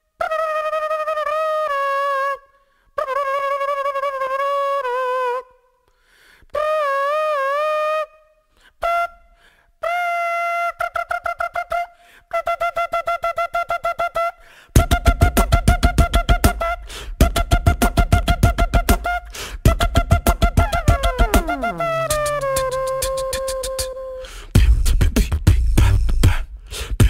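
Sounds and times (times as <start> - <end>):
flute-like melody with vibrato: 0.1 - 5.6, 6.6 - 24.4.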